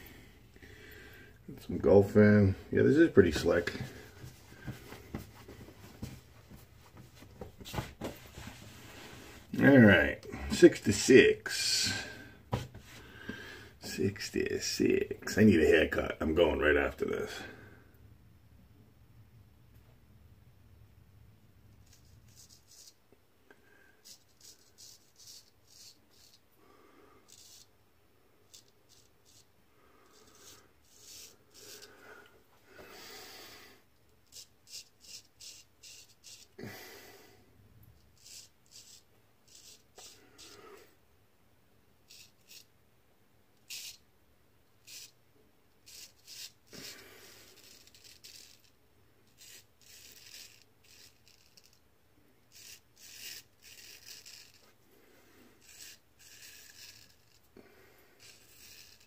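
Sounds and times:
straight razor scraping stubble: 24.1s - 26.4s, 28.5s - 29.5s, 34.3s - 36.6s, 38.2s - 40.8s, 45.8s - 48.7s, 49.3s - 51.8s, 52.5s - 54.8s, 55.6s - 57.6s, 58.2s - 59.0s.

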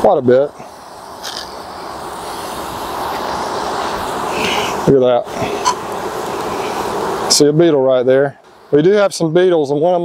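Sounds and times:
bees humming: 0.0s - 10.0s.

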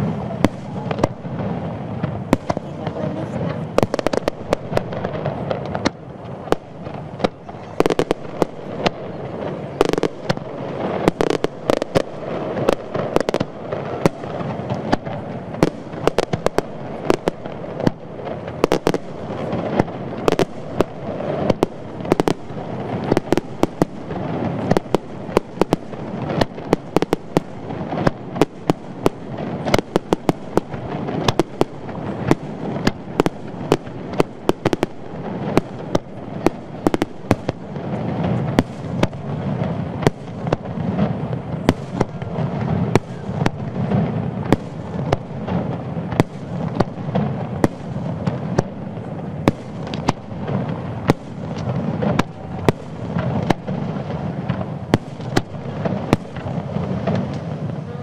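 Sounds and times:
continuous rumble: 0.0s - 58.0s.

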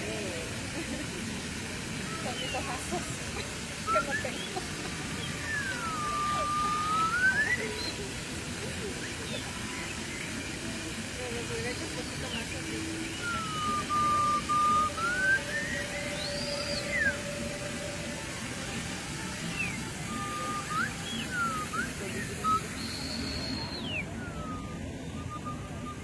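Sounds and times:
steady background noise: 0.0s - 26.0s
whistle-like sliding tones: 5.2s - 7.9s, 13.1s - 26.0s.

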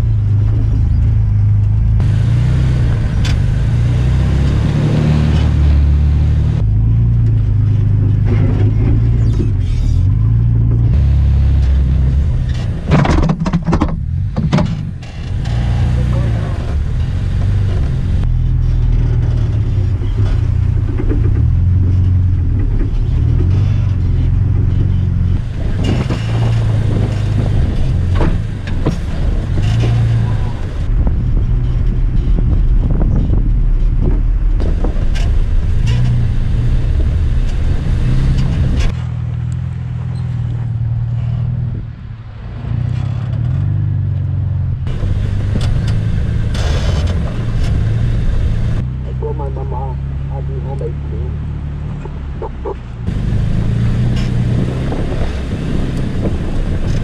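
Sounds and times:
tires crunching over rocks: 0.0s - 57.0s
truck engine running: 0.0s - 57.0s.

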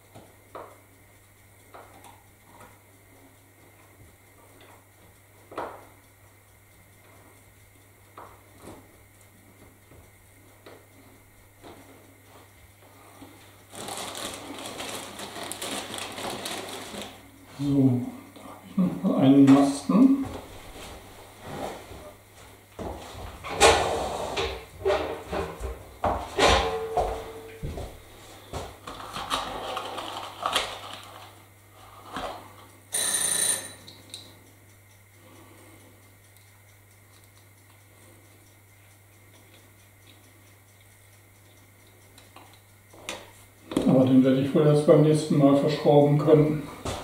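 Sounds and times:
steady low hum: 0.0s - 47.0s
high ringing tone: 26.6s - 27.8s, 32.9s - 34.0s
small parts clicking and tapping: 32.1s - 44.0s.

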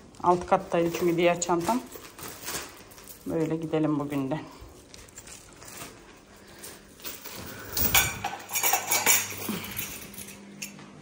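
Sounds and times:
metal chain strap clinking: 5.1s - 10.8s.

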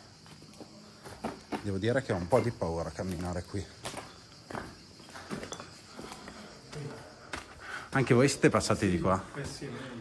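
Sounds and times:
footsteps on rubble: 0.1s - 8.1s.

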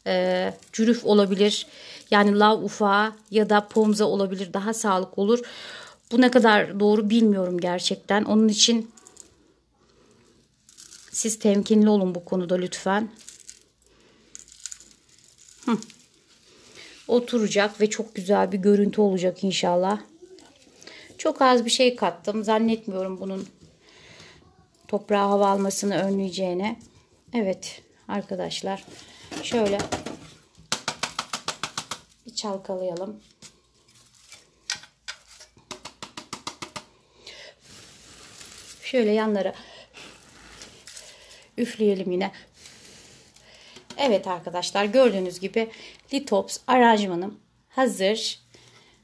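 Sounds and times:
sand trickling onto gravel: 37.6s - 39.0s.

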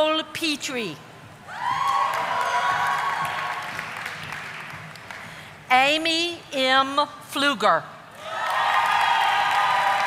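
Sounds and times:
shouted cheers: 1.5s - 3.8s, 8.2s - 10.0s
audience applauding: 1.8s - 5.4s, 8.2s - 10.0s.

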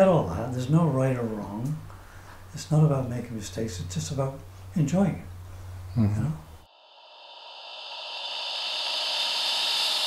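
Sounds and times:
smooth rushing hiss: 6.6s - 10.0s.

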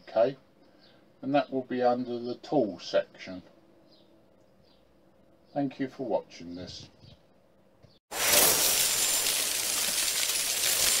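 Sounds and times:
sparkler hiss with crackle: 8.1s - 11.0s.

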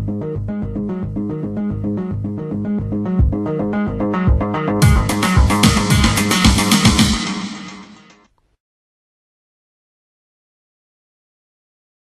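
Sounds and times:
bass and guitar riff: 0.0s - 8.2s
drums and cymbals: 4.8s - 8.2s.

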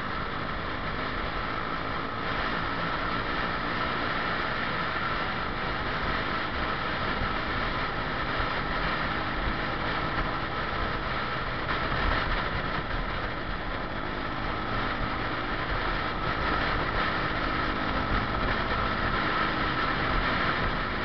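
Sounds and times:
road noise: 0.0s - 21.0s.

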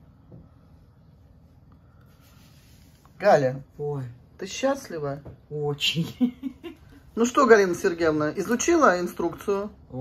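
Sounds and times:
faint rubbing or scratching: 1.1s - 3.7s.

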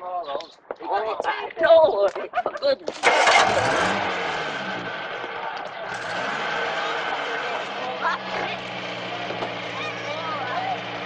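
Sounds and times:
car engine starting and revving: 3.0s - 11.0s.

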